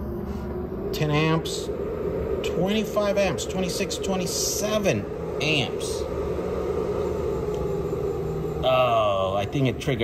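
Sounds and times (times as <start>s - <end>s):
electrical hum: 0.0s - 10.0s
fan noise: 0.0s - 10.0s.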